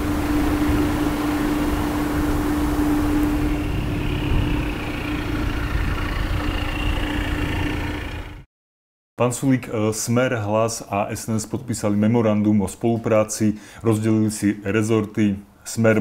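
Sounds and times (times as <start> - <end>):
mechanical hum with droning tone: 0.0 - 8.4.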